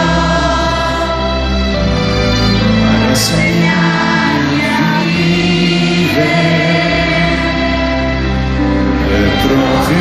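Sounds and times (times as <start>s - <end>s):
orchestra playing: 0.0s - 10.0s.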